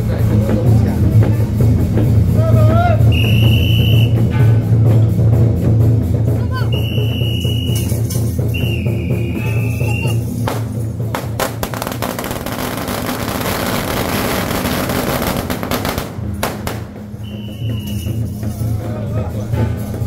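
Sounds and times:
procession music with drums: 0.0s - 20.0s
firecrackers bangs and crackling: 6.7s - 18.4s.

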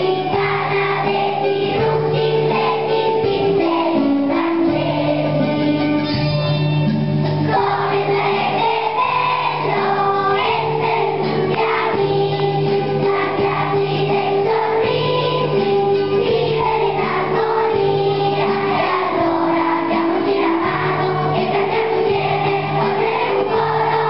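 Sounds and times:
children's choir singing: 0.0s - 6.1s, 7.5s - 24.0s.

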